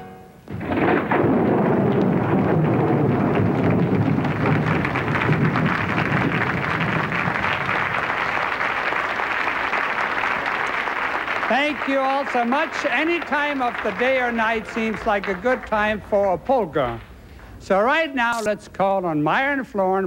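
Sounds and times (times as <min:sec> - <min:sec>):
audience applauding: 0:01.2 - 0:16.2.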